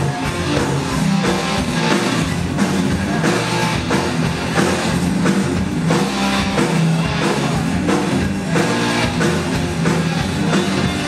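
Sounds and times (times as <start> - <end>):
rock band playing heavy metal: 0.0 - 11.0
steady drum beat: 0.0 - 11.0.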